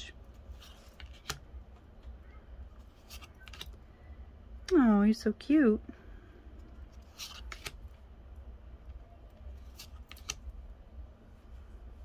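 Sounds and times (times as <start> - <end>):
low room hum: 0.0 - 12.0
trading cards sliding and clicking: 0.3 - 1.5, 2.8 - 3.8, 6.8 - 7.9, 9.4 - 10.5.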